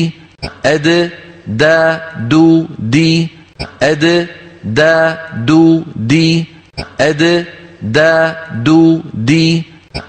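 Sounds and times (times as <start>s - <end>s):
man chanting syllables: 0.0s - 10.0s.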